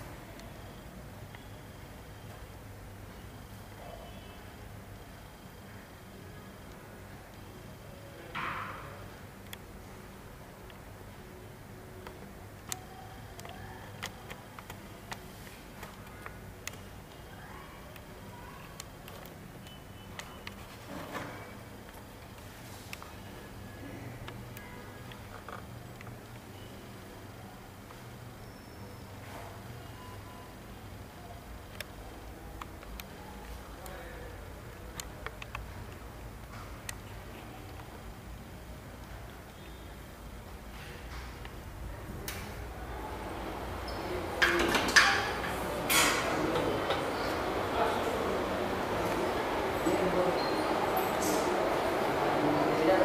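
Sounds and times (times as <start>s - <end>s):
low background hum: 0.0s - 53.0s
metal doors clanking: 44.0s - 47.2s.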